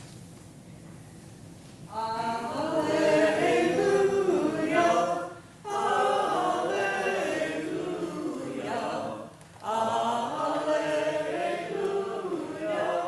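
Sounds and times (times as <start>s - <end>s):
group singing a hymn: 1.9s - 13.0s.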